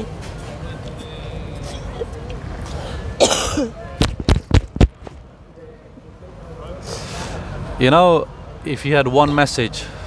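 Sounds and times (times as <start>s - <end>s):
woman coughing: 3.2s - 3.7s.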